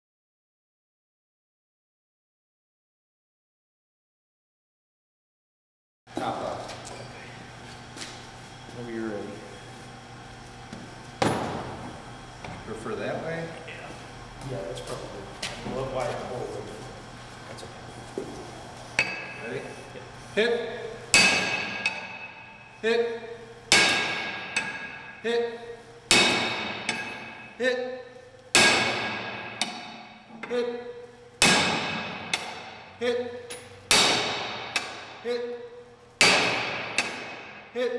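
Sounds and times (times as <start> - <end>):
metal-on-metal strikes: 21.1 - 22.6, 23.7 - 25.2, 26.1 - 27.6, 28.5 - 30.3, 31.4 - 32.9, 33.5 - 35.2, 36.2 - 37.7.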